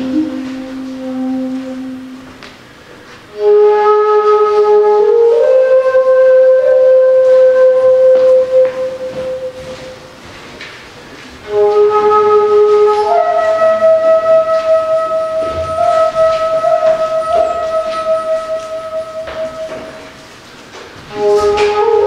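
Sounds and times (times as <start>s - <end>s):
wooden flute playing slow melody: 0.0s - 10.2s, 11.4s - 22.0s.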